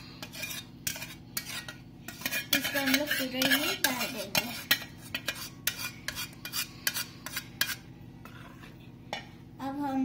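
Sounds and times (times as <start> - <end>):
whisk clinking on steel bowl: 0.0 - 7.8.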